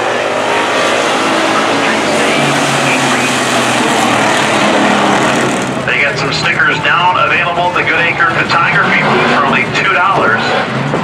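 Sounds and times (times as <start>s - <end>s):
race car engines: 0.0s - 11.0s
steady engine note: 0.0s - 11.0s.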